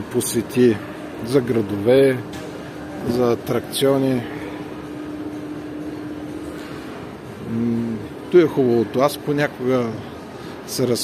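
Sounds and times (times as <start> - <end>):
man speaking: 0.0 - 2.2, 7.4 - 10.0.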